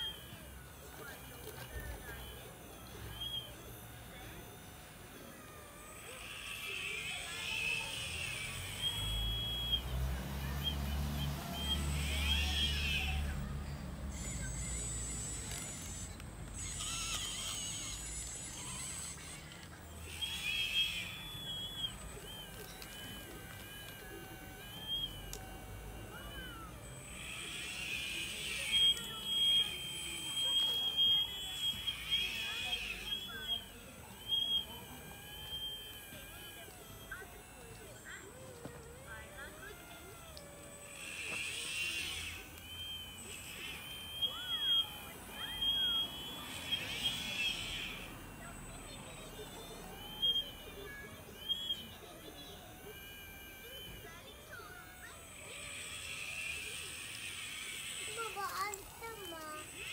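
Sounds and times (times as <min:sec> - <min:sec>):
electric motors whining: 0:00.0 - 0:59.9
sharp clicks: 0:14.0 - 0:25.8.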